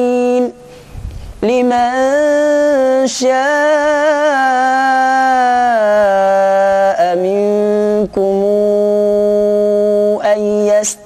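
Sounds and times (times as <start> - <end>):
man chanting recitation: 0.0 - 0.7, 1.4 - 11.0.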